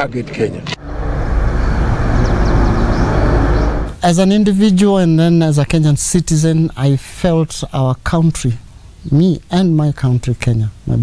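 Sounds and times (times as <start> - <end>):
city traffic rumble: 0.0 - 6.9.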